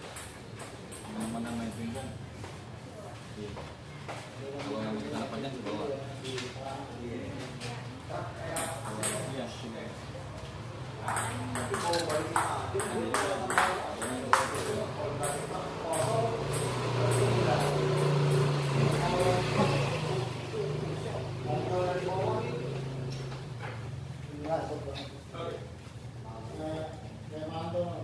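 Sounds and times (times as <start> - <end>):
voices in a hall: 0.9 - 28.0
ping-pong ball clicking: 11.0 - 19.4.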